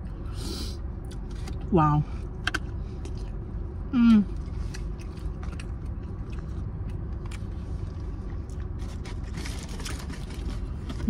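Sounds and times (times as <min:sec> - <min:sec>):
low rumble inside car: 0:00.0 - 0:11.0
person chewing: 0:01.0 - 0:01.6, 0:02.9 - 0:03.4, 0:04.1 - 0:09.0.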